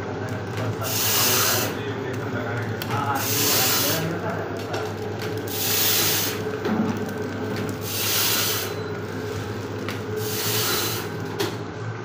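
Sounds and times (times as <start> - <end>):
packing machine hum: 0.0 - 12.0
machine hiss: 0.8 - 1.8, 3.1 - 4.1, 5.5 - 6.5, 7.8 - 8.8, 10.2 - 11.2.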